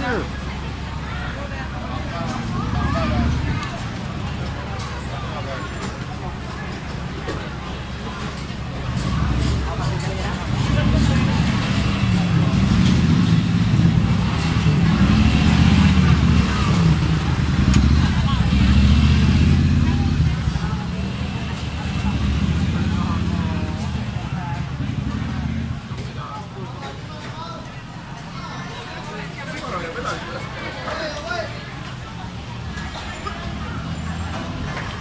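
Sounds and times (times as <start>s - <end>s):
car and motorcycle engines: 0.0s - 35.0s
crowd chatter: 0.0s - 35.0s.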